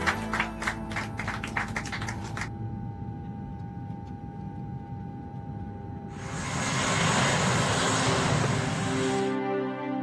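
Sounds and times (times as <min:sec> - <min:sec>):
jet engines roaring with whine: 0:02.3 - 0:09.4.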